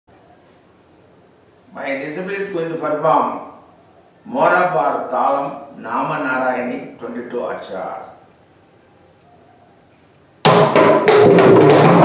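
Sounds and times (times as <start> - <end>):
hand drum rapid strokes: 10.5 - 12.0.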